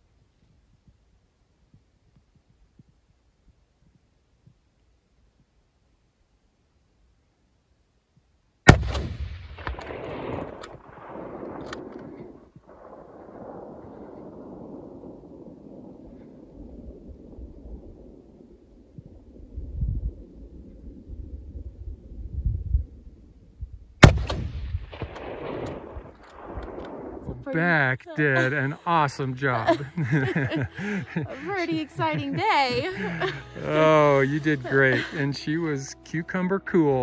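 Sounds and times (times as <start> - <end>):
rifle shots with long echo: 8.7 - 18.6, 24.0 - 27.4.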